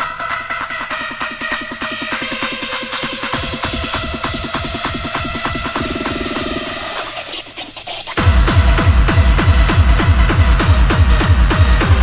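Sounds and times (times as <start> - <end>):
hardcore techno track: 0.0 - 12.0
fast kick drum: 1.8 - 6.9, 8.2 - 12.0.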